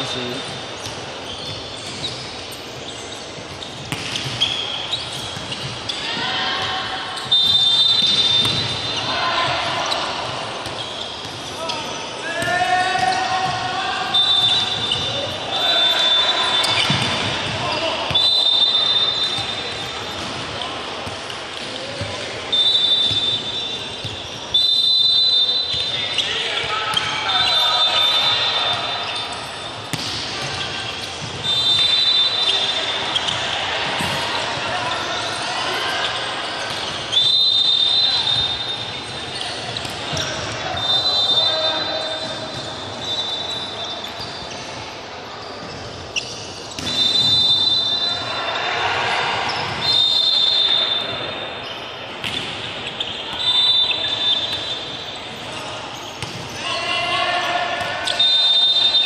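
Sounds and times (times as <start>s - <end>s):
volleyball hits: 3.8s - 5.8s, 16.6s - 18.2s, 29.8s - 32.0s, 52.2s - 53.5s
players shouting: 11.4s - 19.9s.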